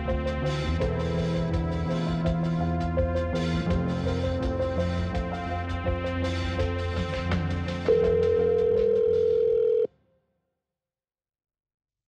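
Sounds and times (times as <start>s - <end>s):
podcast theme music: 0.0s - 9.9s
telephone ringback tone: 7.9s - 9.9s.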